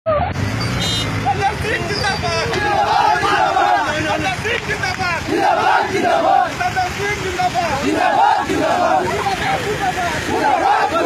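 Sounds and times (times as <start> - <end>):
crowd talking and calling out: 0.1 - 11.0.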